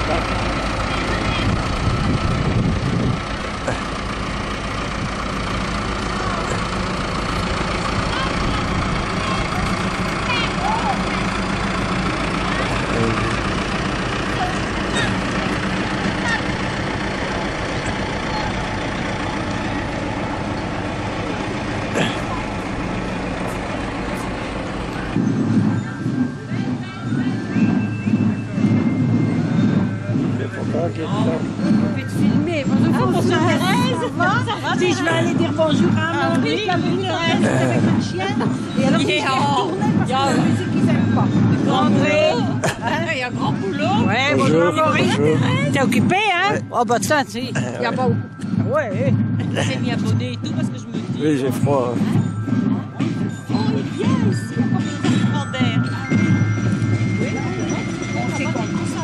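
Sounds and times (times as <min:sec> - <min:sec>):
tractor engine rumbling: 0:00.0 - 0:59.0
voices: 0:00.0 - 0:59.0.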